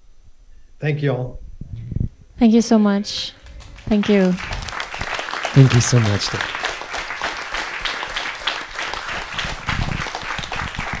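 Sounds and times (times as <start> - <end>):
people applauding: 3.4 - 11.0.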